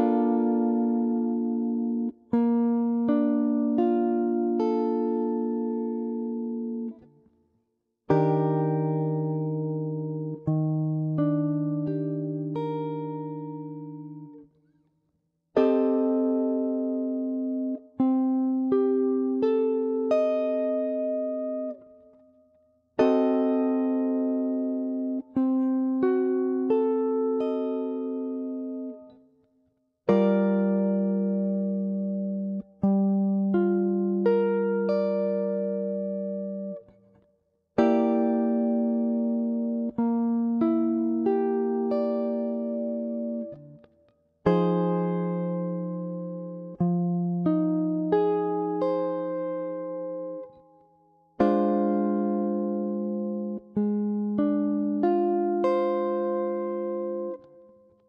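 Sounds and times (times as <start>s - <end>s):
clean electric guitar chord: 30.1s - 37.0s, 37.8s - 43.9s, 44.5s - 50.6s, 51.4s - 57.9s.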